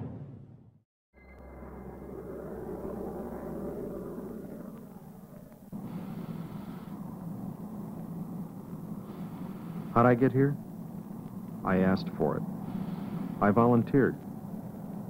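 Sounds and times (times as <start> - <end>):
jet aircraft engine drone: 1.2 - 15.0.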